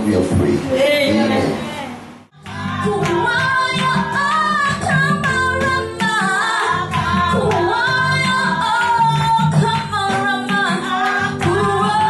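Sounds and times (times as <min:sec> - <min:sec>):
woman singing into microphone: 0:01.0 - 0:12.0.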